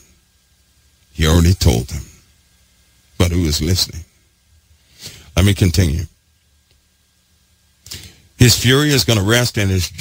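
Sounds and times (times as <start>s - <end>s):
man speaking: 1.1s - 2.3s, 3.2s - 4.2s, 5.3s - 6.2s, 8.4s - 10.0s
intake of breath: 4.8s - 5.3s.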